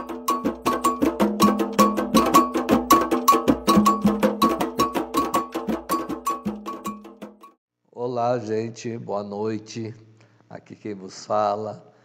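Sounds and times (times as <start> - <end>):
bell-like metal percussion: 0.0 - 7.5.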